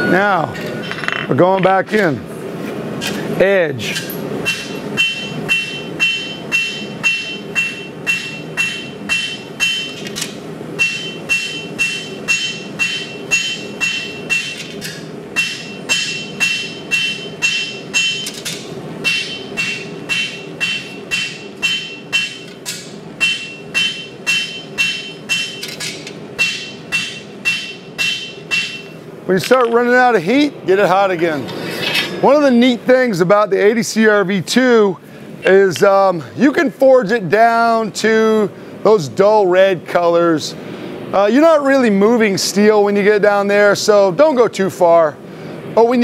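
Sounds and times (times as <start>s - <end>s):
hammer striking steel on anvil: 4.0s - 29.0s
high metallic ring: 4.1s - 10.1s, 10.8s - 25.8s, 26.4s - 29.0s.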